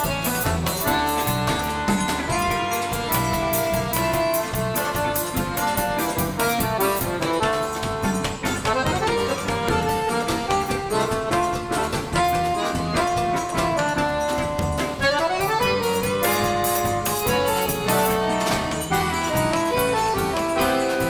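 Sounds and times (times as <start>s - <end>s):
accordion melody: 0.0s - 21.0s
bass guitar: 0.0s - 21.0s
drums: 0.0s - 21.0s.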